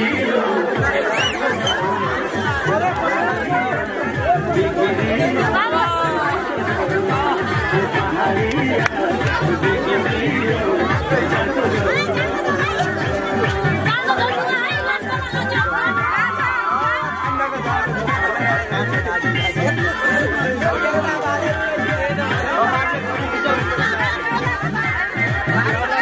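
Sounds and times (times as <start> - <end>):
crowd talking and calling out: 0.0 - 26.0
loud dance music: 0.0 - 26.0.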